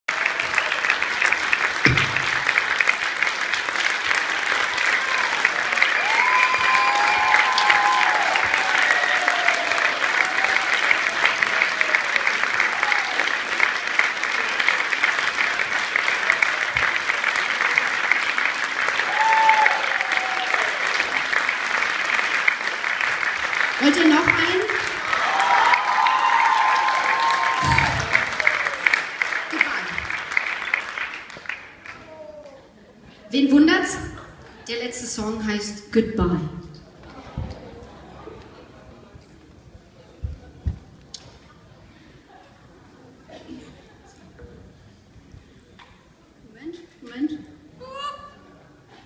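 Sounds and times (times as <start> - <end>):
audience applauding: 0.0 - 32.8.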